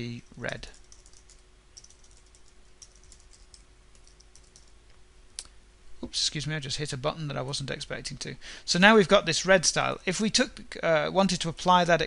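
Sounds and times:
computer keyboard typing: 0.6s - 4.8s.

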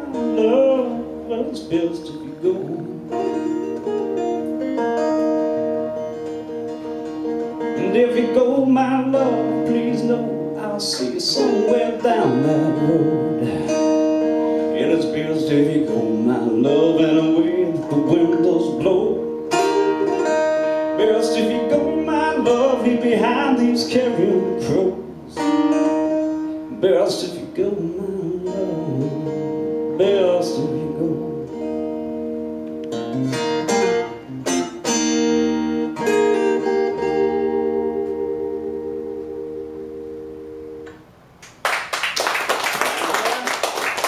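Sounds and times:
acoustic guitar strumming: 0.0s - 41.2s
applause: 41.4s - 44.0s.

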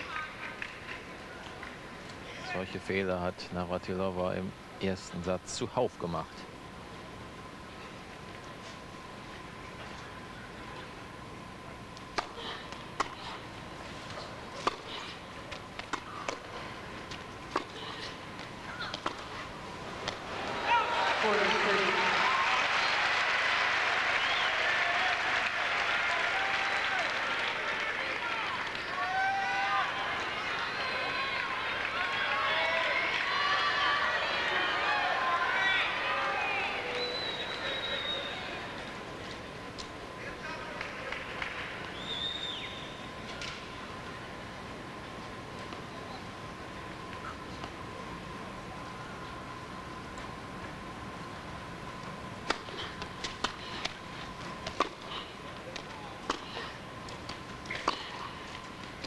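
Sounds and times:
crowd cheering and shouting: 20.3s - 38.8s.

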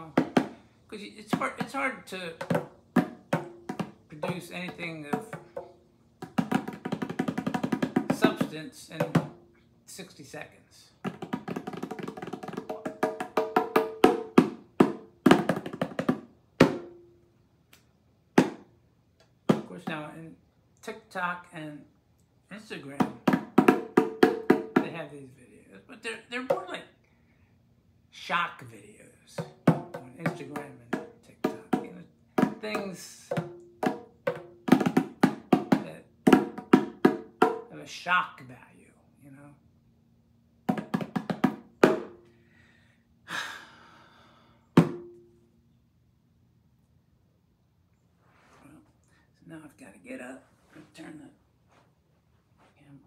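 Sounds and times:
bongos played by hand: 0.0s - 0.6s, 1.3s - 9.5s, 11.0s - 17.2s, 18.4s - 18.7s, 19.5s - 20.1s, 23.0s - 25.0s, 29.4s - 37.7s, 40.7s - 42.2s, 44.8s - 45.4s.

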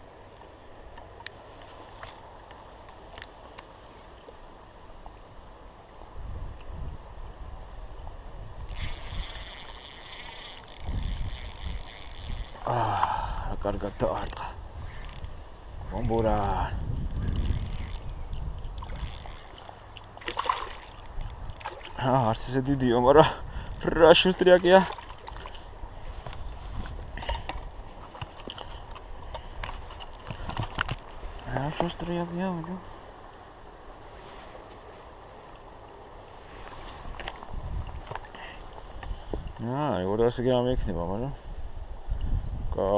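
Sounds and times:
faint water sounds: 0.0s - 42.9s
fishing reel whirring: 8.6s - 12.8s, 14.0s - 15.4s, 16.0s - 19.8s, 23.6s - 24.3s.

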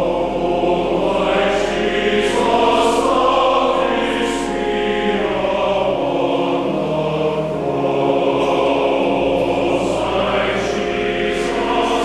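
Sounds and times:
church choir singing: 0.0s - 12.0s.

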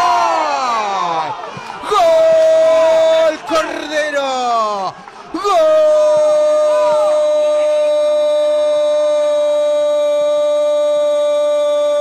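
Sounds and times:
football commentator shouting: 0.0s - 12.0s.

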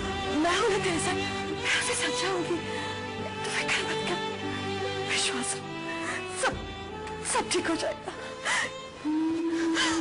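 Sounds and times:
sad background music: 0.0s - 10.0s
woman crying: 8.1s - 10.0s.

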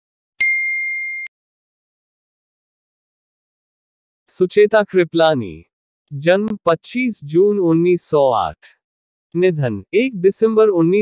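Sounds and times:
high bell-like ding: 0.4s - 1.3s.

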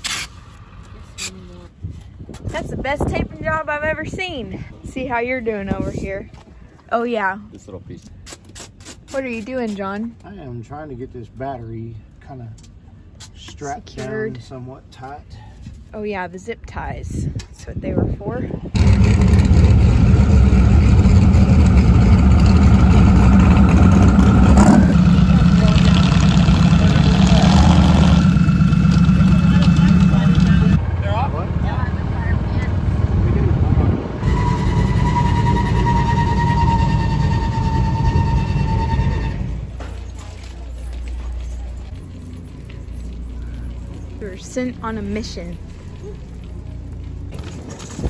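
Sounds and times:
car engine rumbling: 17.8s - 48.0s.

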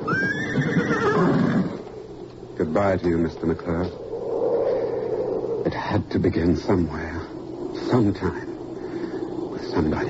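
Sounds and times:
horse whinnying: 0.0s - 1.8s.

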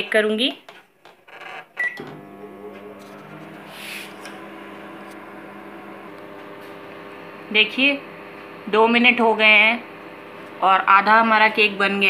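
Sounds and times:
microwave keypad beep: 1.8s - 2.2s
microwave hum and fan: 1.8s - 12.0s.

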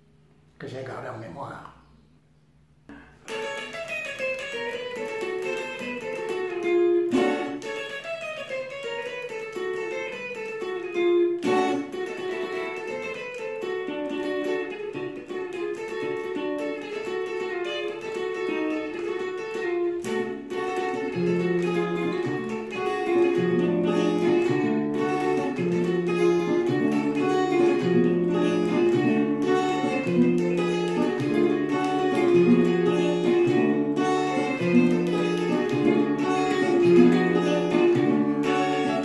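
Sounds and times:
solo guitar picking: 2.9s - 39.0s.

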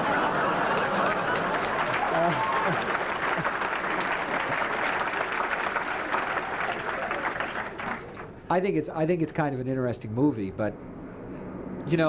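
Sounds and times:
audience applause: 0.0s - 8.4s.

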